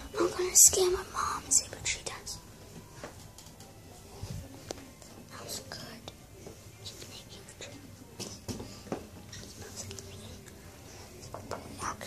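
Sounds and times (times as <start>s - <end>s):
person whispering: 5.3s - 6.2s, 6.8s - 7.9s, 9.3s - 10.6s, 11.6s - 12.0s.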